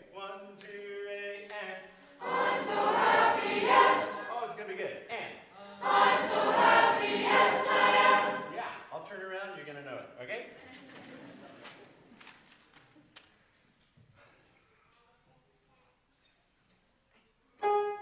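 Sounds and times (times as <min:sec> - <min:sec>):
choir singing: 0:01.7 - 0:04.6, 0:05.6 - 0:08.8.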